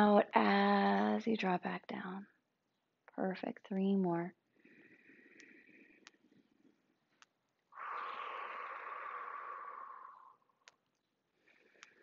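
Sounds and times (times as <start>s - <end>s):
woman inhaling: 4.6s - 6.1s, 7.8s - 10.5s
woman exhaling audibly: 7.8s - 10.5s.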